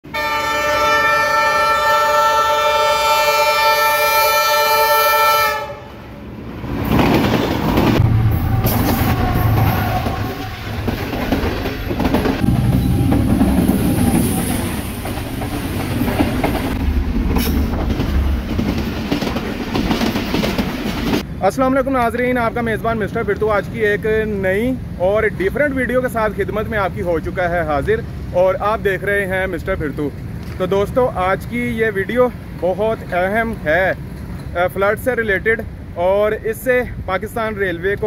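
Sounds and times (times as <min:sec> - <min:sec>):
train horn blast: 0:00.1 - 0:06.1, 0:08.0 - 0:11.0
train rumbling past: 0:00.1 - 0:21.5, 0:22.3 - 0:36.0
wheels clattering on rails: 0:06.7 - 0:08.0, 0:08.6 - 0:21.3, 0:29.1 - 0:35.0.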